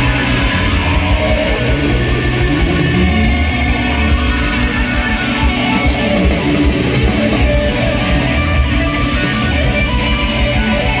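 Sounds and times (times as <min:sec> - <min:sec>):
electric guitar: 0:00.0 - 0:11.0
live pop-rock band music: 0:00.0 - 0:11.0.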